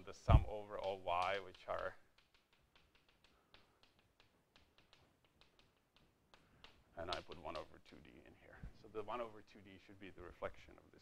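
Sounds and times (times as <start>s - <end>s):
chalk tapping on blackboard: 0.0s - 8.1s.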